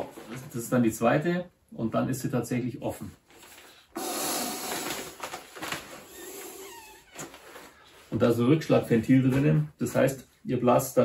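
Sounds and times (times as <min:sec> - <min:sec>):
breath blown into pad valve: 0:04.0 - 0:05.0
faint squeaks: 0:06.0 - 0:08.1.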